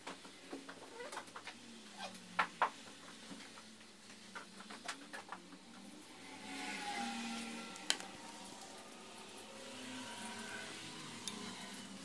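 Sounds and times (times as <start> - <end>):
machine whir with faint tones: 0.0 - 12.0.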